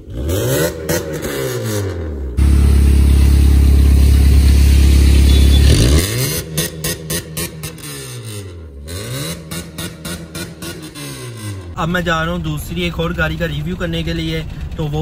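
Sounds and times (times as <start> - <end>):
car exhaust revving: 0.0 - 11.8.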